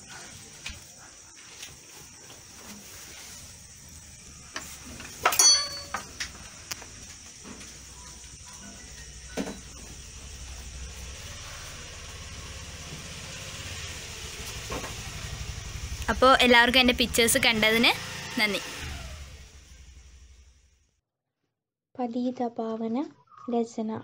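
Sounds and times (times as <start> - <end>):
background hum: 0.0 - 20.8.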